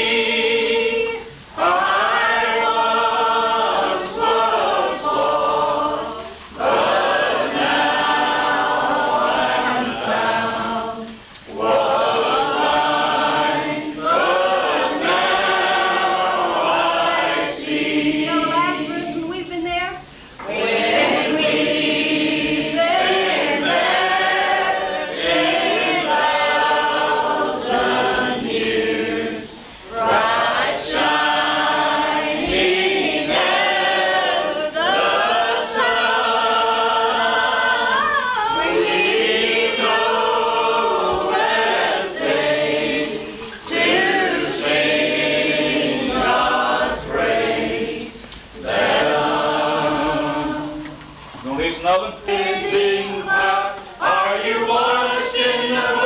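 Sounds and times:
group singing without instruments: 0.0s - 56.0s.

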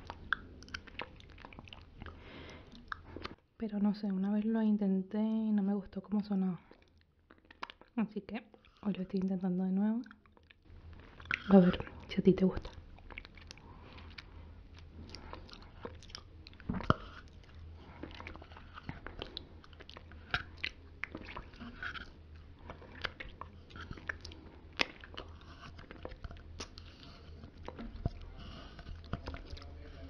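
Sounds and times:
wet lip and tongue smacks: 0.0s - 3.4s, 6.7s - 8.8s, 12.6s - 29.7s.

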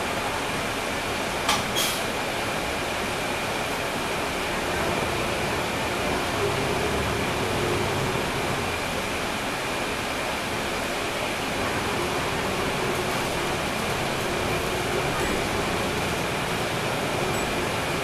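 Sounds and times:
road and air noise hiss: 0.0s - 18.0s
diesel bus engine droning: 2.6s - 18.0s.

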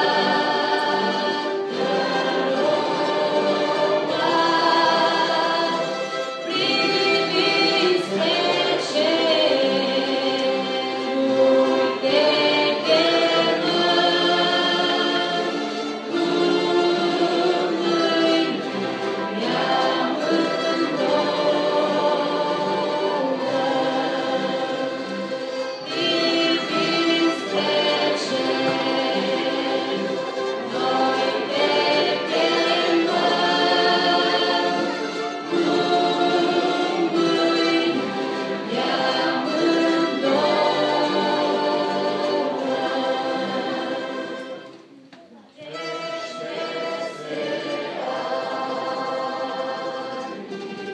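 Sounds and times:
orchestra playing held chords: 0.0s - 45.0s, 45.6s - 50.9s
choir singing: 0.0s - 50.9s.

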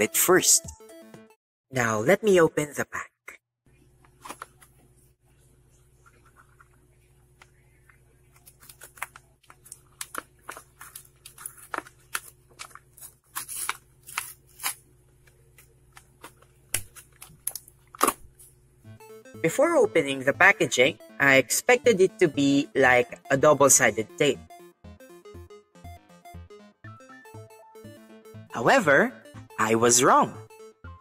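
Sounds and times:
packaging being torn open: 8.4s - 18.2s.

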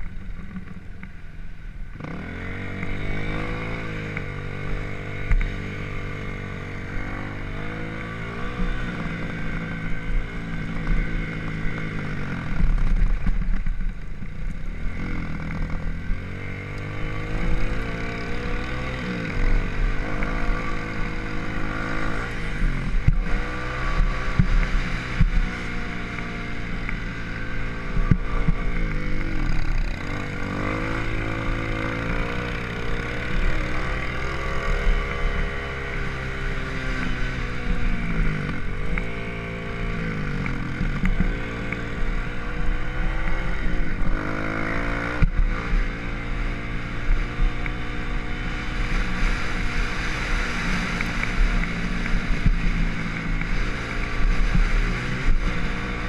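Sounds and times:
dirt bike engine revving: 2.0s - 13.0s, 14.8s - 56.0s.

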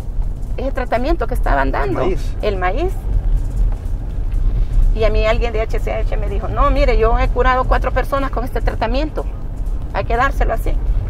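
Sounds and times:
car rumble from inside cabin: 0.0s - 11.0s.

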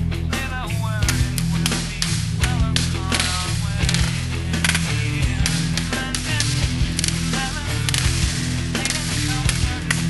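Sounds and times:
rock music: 0.0s - 10.0s.

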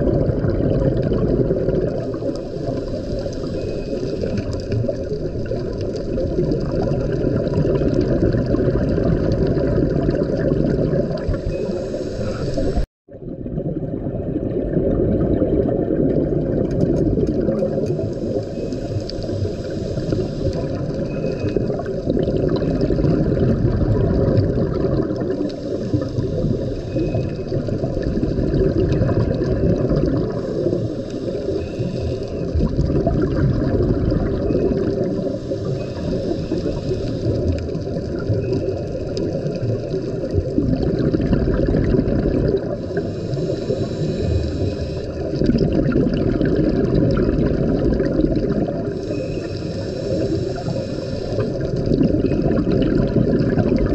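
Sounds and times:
muffled underwater rushing: 0.0s - 53.9s.

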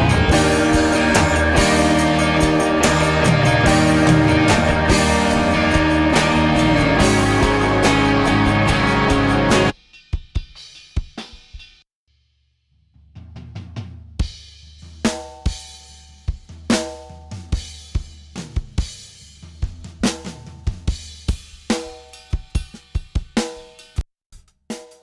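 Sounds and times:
full band music: 0.0s - 9.7s
drum kit beat: 0.0s - 11.8s, 13.0s - 25.0s.

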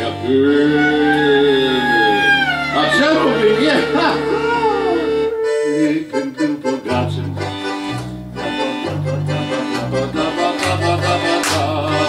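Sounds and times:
accordion playing a tune: 0.0s - 12.0s
clarinet: 0.0s - 12.0s.

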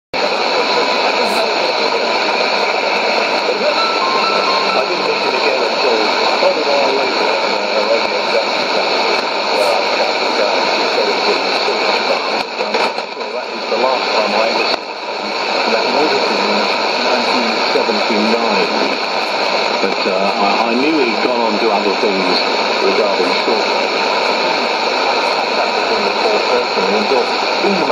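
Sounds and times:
radio static and hiss: 0.2s - 27.9s
voice over radio: 0.2s - 27.9s.

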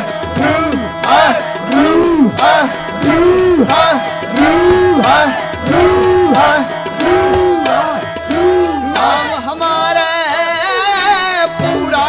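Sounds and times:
sustained harmonium notes: 0.0s - 10.0s
tabla rhythm: 0.0s - 12.0s.

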